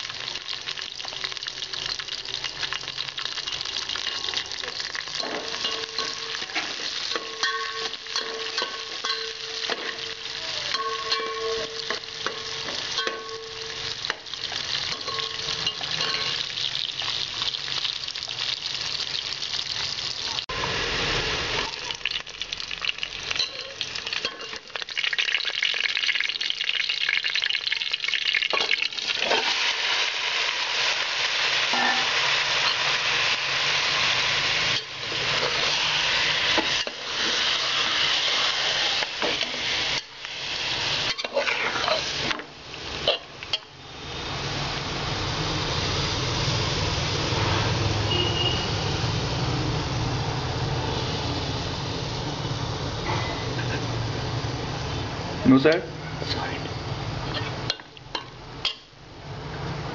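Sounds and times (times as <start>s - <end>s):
onions sizzling in hot oil: 0.0s - 59.9s
steel spoon scraping a pot: 14.9s - 16.5s, 41.0s - 42.4s, 57.3s - 57.6s.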